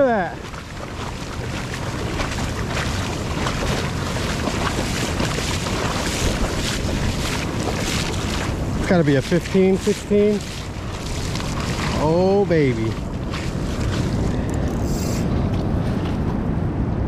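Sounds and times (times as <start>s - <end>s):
ocean surf washing over sand: 0.0s - 16.8s.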